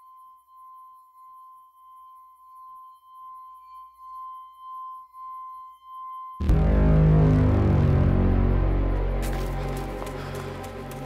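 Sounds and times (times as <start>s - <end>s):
pulsing electronic tone: 3.5s - 9.5s.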